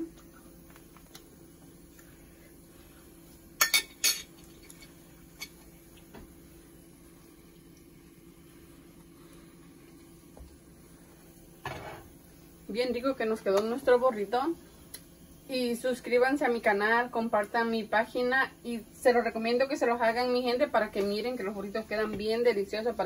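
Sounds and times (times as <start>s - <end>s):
faint steady hum: 0.0s - 23.0s.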